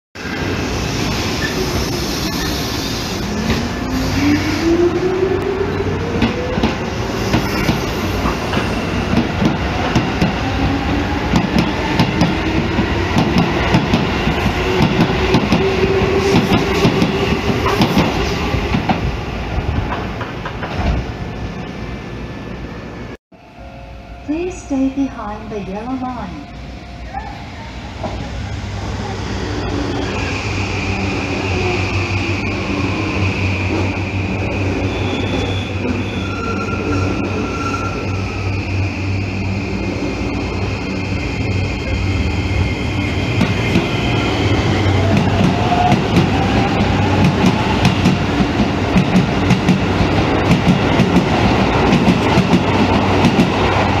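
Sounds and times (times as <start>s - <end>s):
electric train braking: 0.2s - 19.0s, 27.8s - 54.0s.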